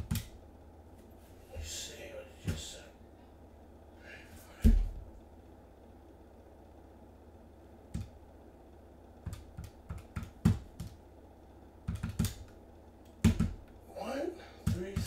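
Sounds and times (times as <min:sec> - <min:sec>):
computer keyboard typing: 0:11.8 - 0:12.5.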